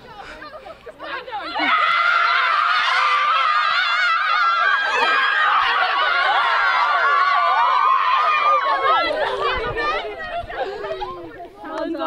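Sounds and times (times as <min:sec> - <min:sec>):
women chattering and calling out: 0:00.0 - 0:02.2, 0:08.3 - 0:12.0.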